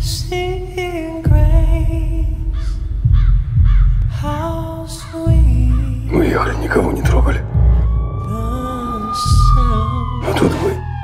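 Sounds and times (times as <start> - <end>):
deep low drone: 0.0 - 11.0
crow cawing: 2.5 - 4.0.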